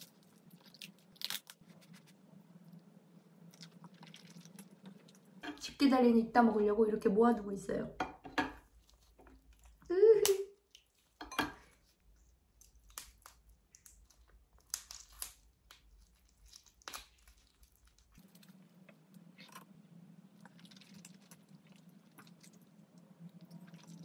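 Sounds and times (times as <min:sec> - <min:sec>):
crab shell cracking: 0:00.0 - 0:02.0, 0:12.5 - 0:19.7
faint low hum: 0:00.0 - 0:24.0.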